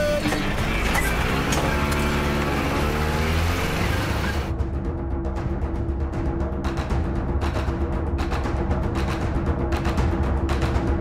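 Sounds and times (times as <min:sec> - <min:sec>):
van engine droning: 0:00.0 - 0:04.5.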